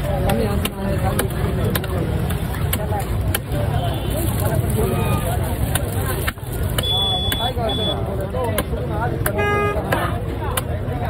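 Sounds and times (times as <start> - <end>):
background chatter: 0.0 - 11.0
low traffic rumble: 0.0 - 11.0.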